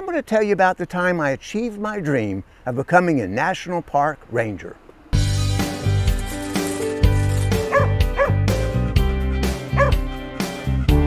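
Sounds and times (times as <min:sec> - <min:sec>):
upbeat music with a beat: 0:05.2 - 0:11.0
small dog yipping: 0:07.7 - 0:08.4, 0:09.8 - 0:10.0.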